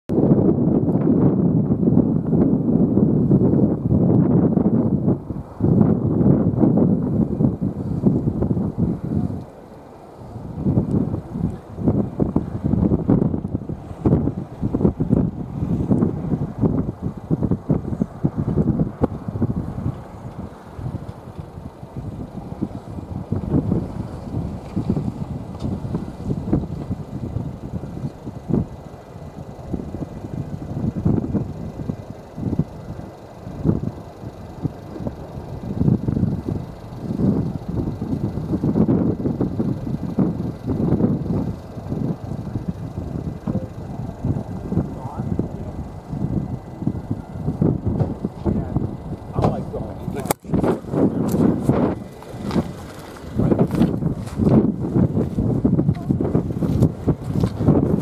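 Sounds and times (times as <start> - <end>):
wind buffeting microphone: 0.1 - 58.0.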